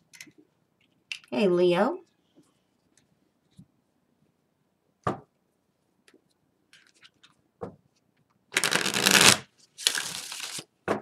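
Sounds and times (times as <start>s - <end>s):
cards being shuffled: 8.6s - 10.7s.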